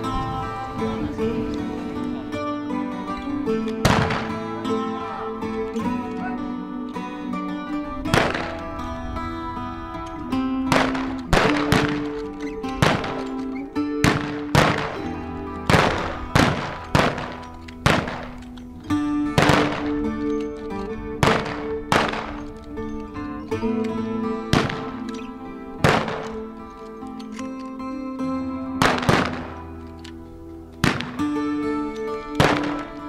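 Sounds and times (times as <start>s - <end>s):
background music with held notes: 0.0s - 33.0s
rifles firing: 3.7s - 4.7s, 8.1s - 8.7s, 10.7s - 18.7s, 19.3s - 22.7s, 24.5s - 26.7s, 28.8s - 30.2s, 30.8s - 31.7s, 32.3s - 33.0s.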